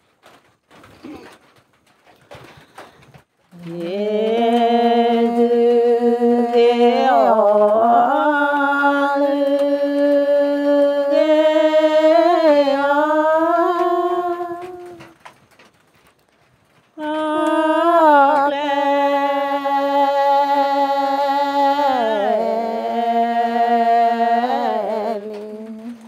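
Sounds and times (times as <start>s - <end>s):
solo voice singing folk song: 3.5s - 15.2s, 17.0s - 26.0s.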